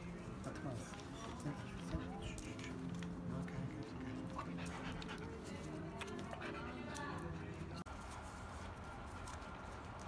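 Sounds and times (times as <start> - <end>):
dog panting and licking: 0.4 - 7.7.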